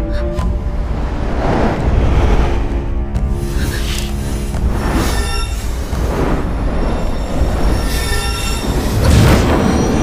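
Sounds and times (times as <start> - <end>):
low rumble: 0.6 - 3.6
metallic ringing whine: 6.8 - 10.0.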